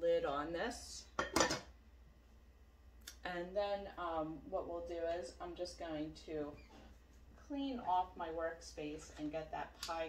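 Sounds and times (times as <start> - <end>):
lid clattering onto a pan: 1.2 - 1.7.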